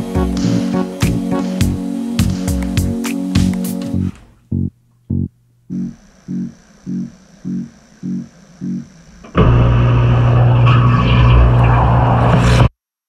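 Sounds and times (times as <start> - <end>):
low pulsing note: 0.0 - 3.0, 4.0 - 12.1
dishwasher spraying water: 0.0 - 4.3.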